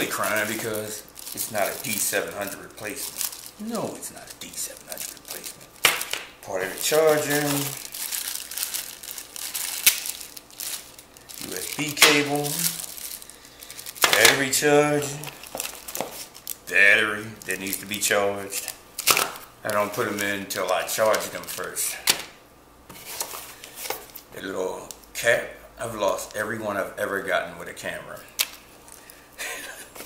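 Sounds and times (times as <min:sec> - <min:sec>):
plastic bags crinkling: 0:00.0 - 0:21.8.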